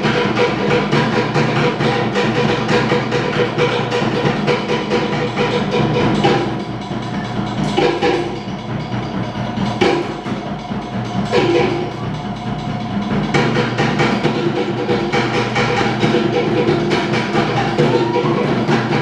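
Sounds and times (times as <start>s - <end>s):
fast rhythm on wooden slit drums: 0.0s - 19.0s.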